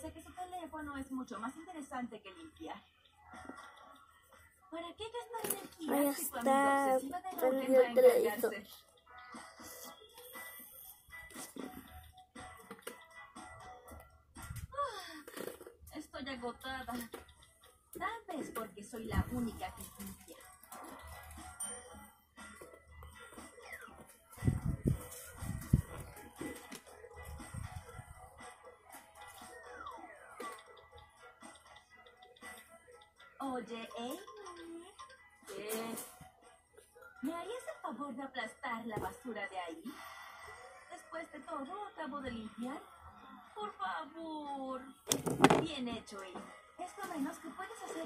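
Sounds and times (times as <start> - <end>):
faint television music: 0.0 - 48.0.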